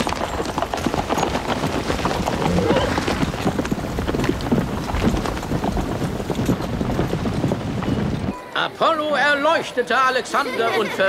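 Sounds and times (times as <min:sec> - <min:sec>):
horses' hooves clattering: 0:00.0 - 0:11.0.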